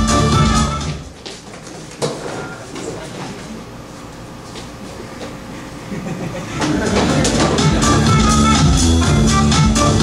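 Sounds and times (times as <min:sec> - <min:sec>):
footsteps on stage: 0:00.6 - 0:05.5, 0:06.5 - 0:08.7
shuffling among chairs: 0:01.1 - 0:05.5.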